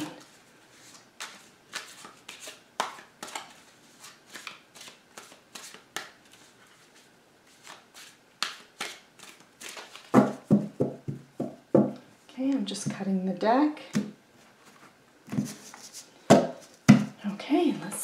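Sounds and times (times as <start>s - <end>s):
cards being shuffled: 0.2s - 10.9s.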